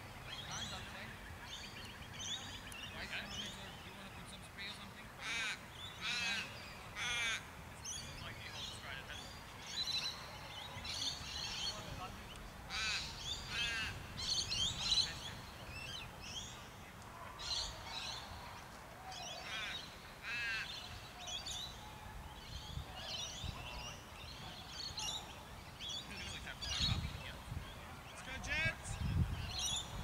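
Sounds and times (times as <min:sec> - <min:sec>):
birds chirping and calling: 0:00.0 - 0:21.8, 0:22.4 - 0:30.0.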